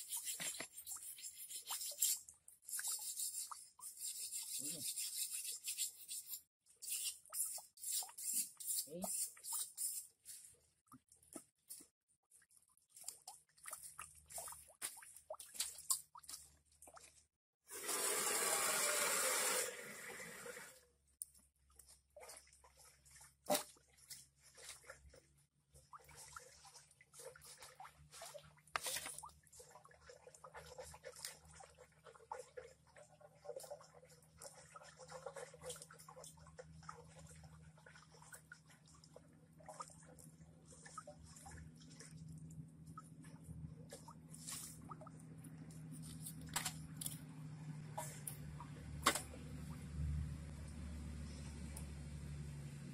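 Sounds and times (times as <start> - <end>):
blade clicks and scrapes: 0.0 - 10.2
water pouring and splashing: 9.1 - 47.2.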